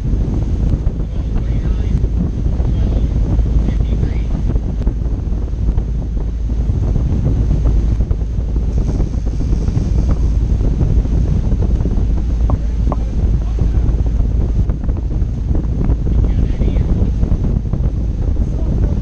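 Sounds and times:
boat engines: 0.0 - 19.0
rush of boat wake: 0.0 - 19.0
wind buffeting microphone: 0.0 - 19.0.

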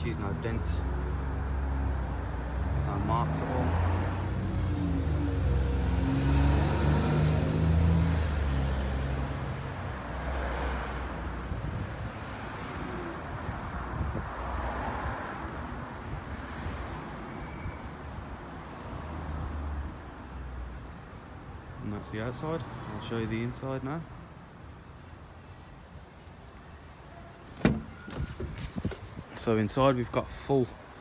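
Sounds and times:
road traffic hiss: 2.0 - 17.9, 18.5 - 31.0.

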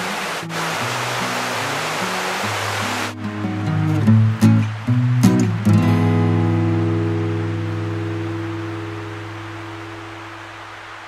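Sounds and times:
acoustic guitar chord ringing: 0.0 - 10.8
steady hiss: 0.0 - 11.0.

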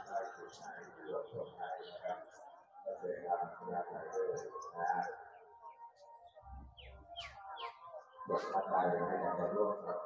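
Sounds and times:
bird chirps: 3.8 - 9.6.

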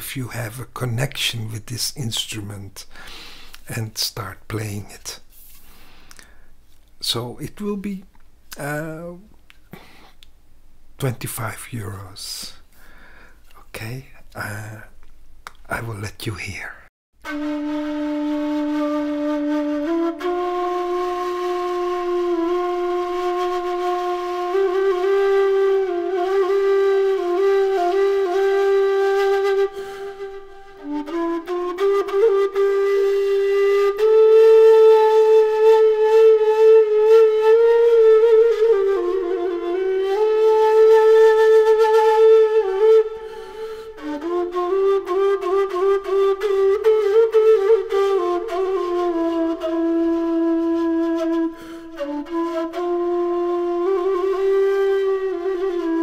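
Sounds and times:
end-blown flute melody: 17.2 - 56.0.

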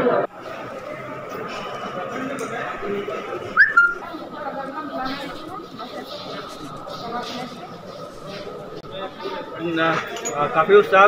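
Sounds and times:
short upward swooping whistle: 3.6 - 4.0.

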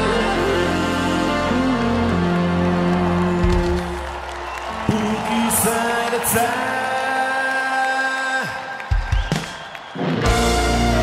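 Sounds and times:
rock music: 0.0 - 11.0.

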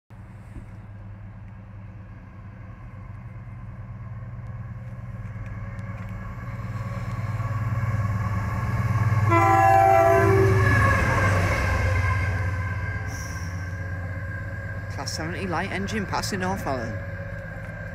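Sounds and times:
diesel locomotive engine drone: 0.1 - 17.9
two-tone locomotive horn: 9.2 - 13.8.

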